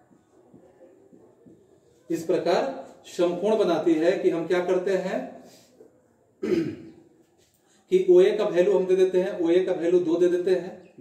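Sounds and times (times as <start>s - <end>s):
man coughing: 6.4s - 7.0s.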